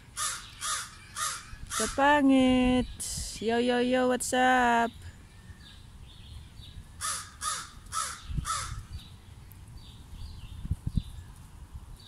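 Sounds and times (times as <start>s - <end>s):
bird harsh calls: 0.0s - 2.0s, 5.2s - 9.2s
small birds chirping: 0.0s - 12.0s.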